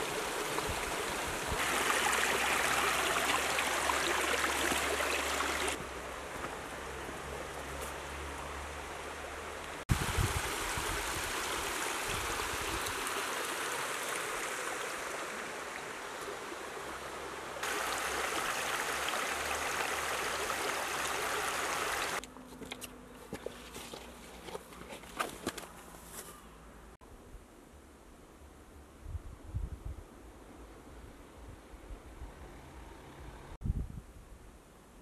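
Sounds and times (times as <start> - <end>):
running water rushing: 0.0 - 22.2.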